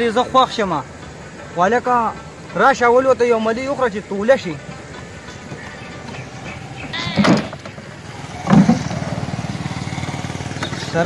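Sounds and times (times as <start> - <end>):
small engine running: 5.0 - 11.0.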